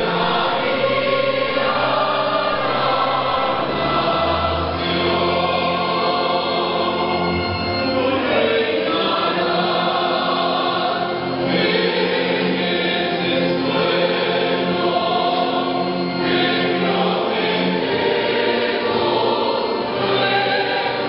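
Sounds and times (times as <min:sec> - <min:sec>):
church choir singing a hymn: 0:00.0 - 0:21.0.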